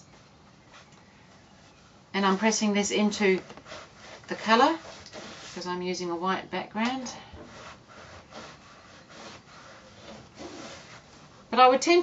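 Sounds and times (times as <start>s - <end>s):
iron rubbing on fabric: 3.0s - 5.8s, 7.4s - 11.9s.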